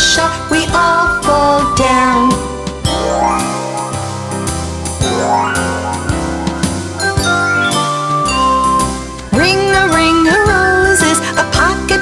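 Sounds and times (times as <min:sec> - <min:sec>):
children's song with chime notes: 0:00.0 - 0:11.0.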